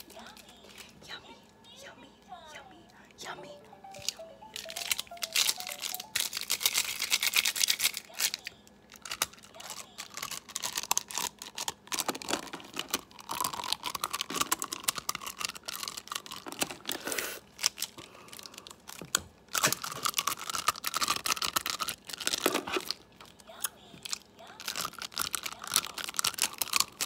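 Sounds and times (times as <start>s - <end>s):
plastic pens clicking together: 3.9s - 17.0s, 17.6s - 23.3s, 24.0s - 27.0s.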